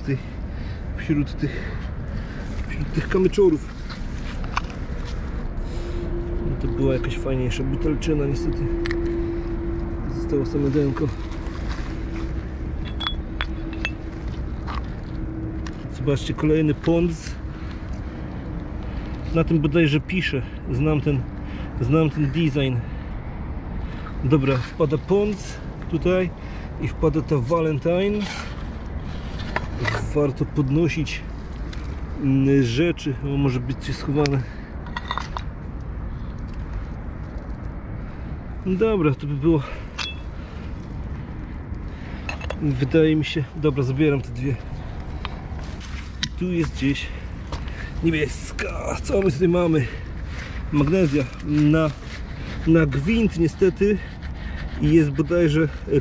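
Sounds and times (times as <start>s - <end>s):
steady low rumble: 0.0s - 27.8s
glass bottles clinking on stones: 12.8s - 14.8s.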